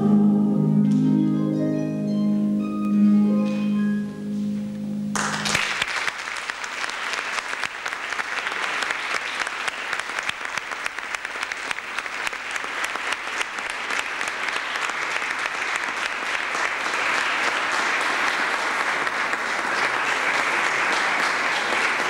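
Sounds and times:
audience applauding: 5.2 - 22.0.

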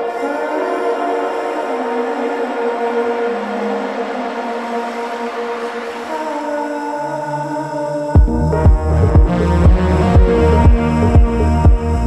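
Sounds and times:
hissing swell: 0.0 - 12.0
sustained synthesizer chords: 0.0 - 12.0.

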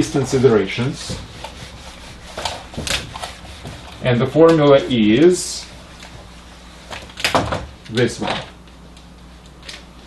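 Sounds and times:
rubbing on whiteboard: 0.0 - 6.4.

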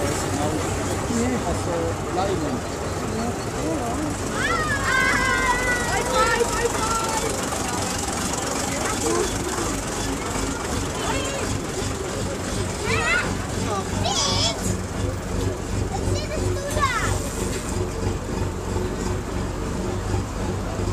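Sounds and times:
crowd chattering: 0.0 - 20.9
vehicle engine hum: 0.0 - 20.9
high-pitched shout: 4.4 - 6.3.

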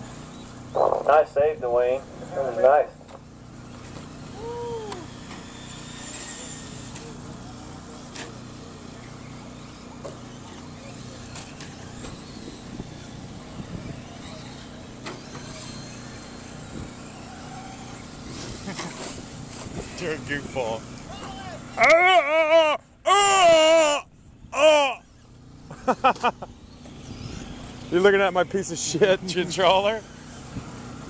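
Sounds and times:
rc truck motor whines: 0.0 - 0.8, 3.1 - 31.0.

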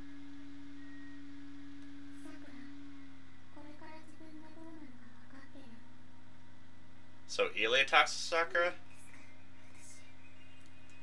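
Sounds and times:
low hum: 0.0 - 11.0
sustained low drone: 0.0 - 11.0.

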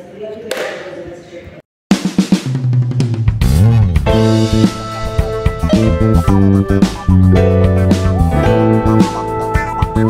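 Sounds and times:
music with drums: 1.9 - 10.0.

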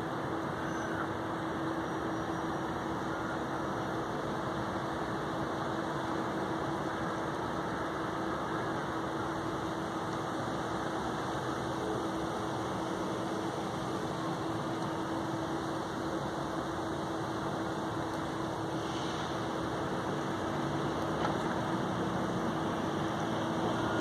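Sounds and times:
steady rushing hum: 0.0 - 24.0.

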